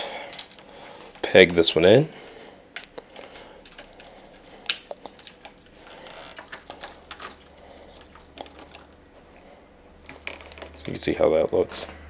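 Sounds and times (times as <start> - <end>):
plastic parts clicking: 2.8 - 9.0.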